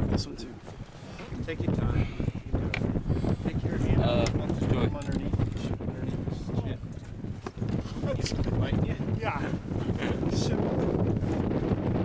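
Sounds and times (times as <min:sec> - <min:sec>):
wind rumbling on microphone: 0:00.0 - 0:12.0.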